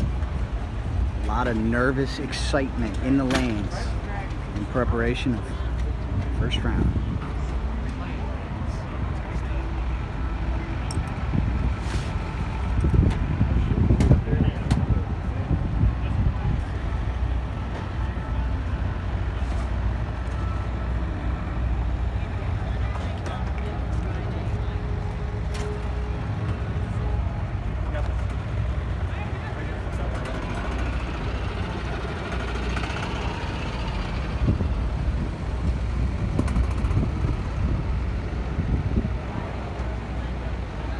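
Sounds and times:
background chatter of people: 0.0 - 40.9
steady low rumble: 0.0 - 40.9.

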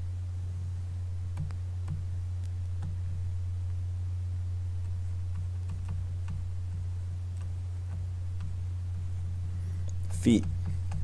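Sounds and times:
steady low hum: 0.0 - 11.0
stylus tapping on tablet screen: 5.3 - 8.6, 10.4 - 11.0.

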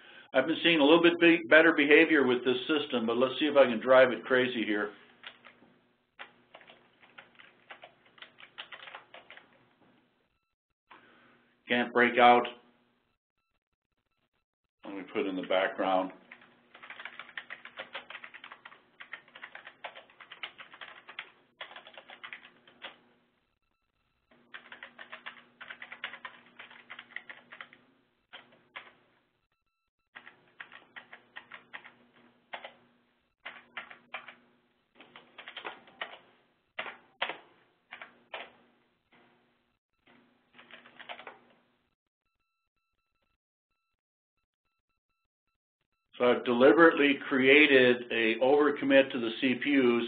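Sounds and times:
keyboard typing: 5.2 - 5.6, 6.2 - 9.6, 16.3 - 23.0, 24.3 - 29.0, 30.2 - 32.8, 33.4 - 34.4, 35.0 - 38.6, 40.6 - 41.6.

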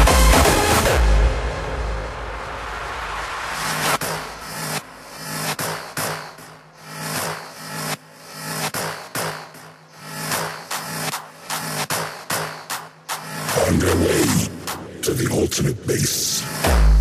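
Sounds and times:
hardstyle dance music: 0.0 - 17.0.

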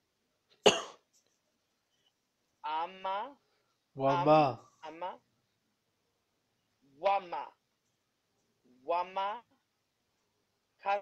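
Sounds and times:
person coughing: 0.6 - 1.0.

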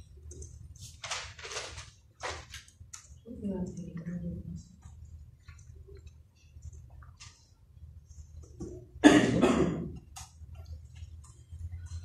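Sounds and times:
low steady hum: 2.0 - 12.0
loud cough: 9.0 - 10.0.

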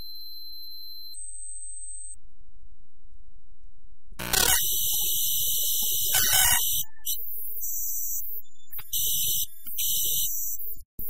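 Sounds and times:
harsh synthesized noise: 4.2 - 7.1
high synthesizer tone: 4.2 - 7.2.

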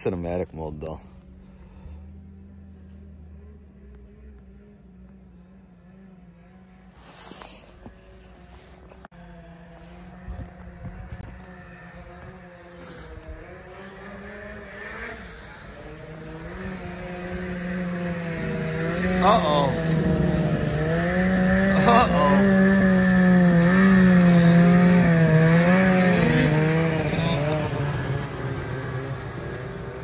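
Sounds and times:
snowmobile engine drone: 0.0 - 30.0.

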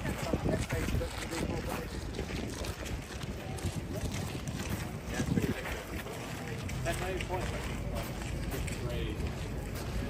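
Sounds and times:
faint chatter of passers-by: 0.0 - 10.0
wind rumbling on microphone: 0.0 - 10.0.

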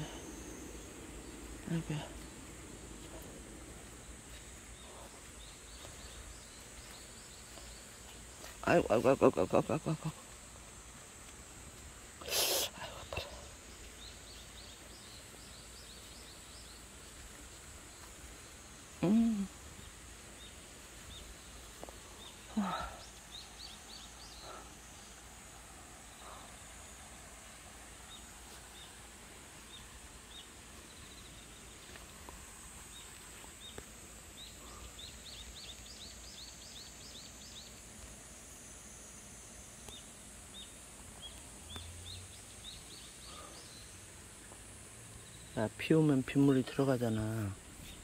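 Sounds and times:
steady high-pitched hiss: 0.0 - 48.0.

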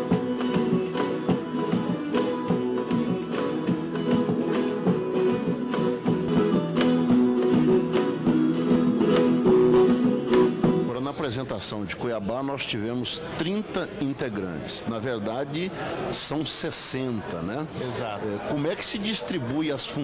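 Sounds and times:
folk guitars strumming together: 0.0 - 11.0.

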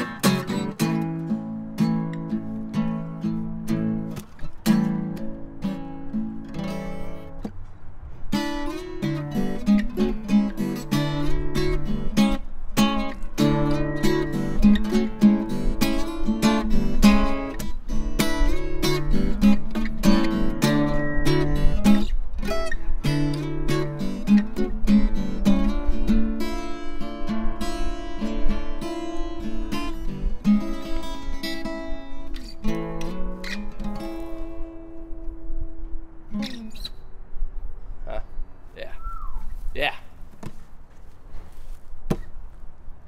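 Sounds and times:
acoustic guitar strumming chords: 0.0 - 7.6, 8.3 - 36.8.

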